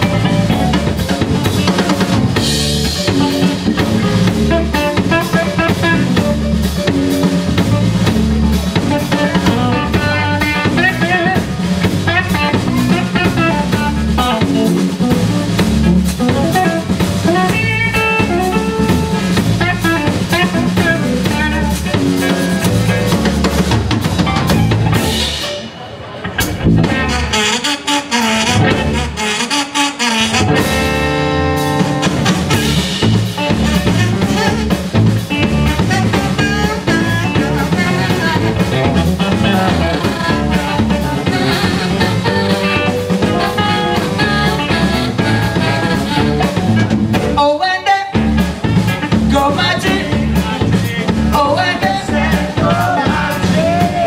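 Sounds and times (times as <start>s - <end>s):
live blues band instrumental: 0.0s - 54.0s.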